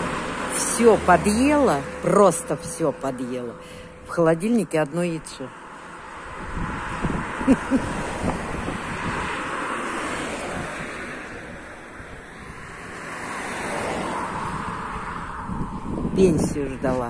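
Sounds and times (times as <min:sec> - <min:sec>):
cars passing on highway: 0:00.0 - 0:17.0.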